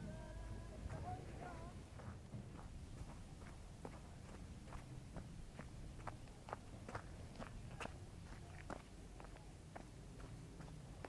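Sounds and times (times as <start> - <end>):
faint footsteps walking: 0.7 - 11.0.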